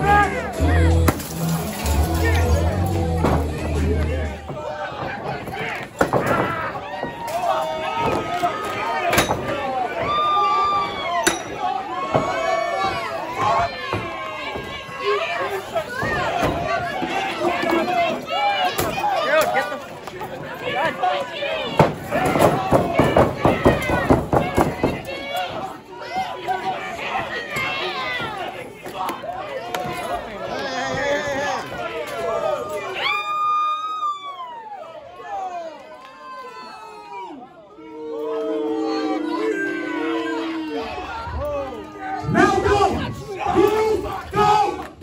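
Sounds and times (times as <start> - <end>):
crowd noise: 0.0 - 45.0
voices shouting: 0.0 - 45.0.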